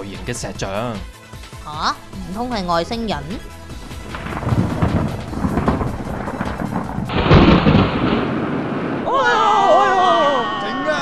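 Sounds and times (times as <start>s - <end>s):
cartoon thunder crash: 3.8s - 10.6s.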